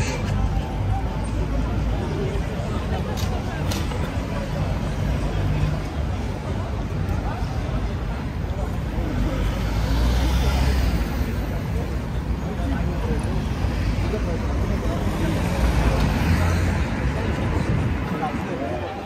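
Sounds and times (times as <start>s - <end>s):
cars passing: 0.0s - 19.0s
hubbub of voices: 0.0s - 19.0s.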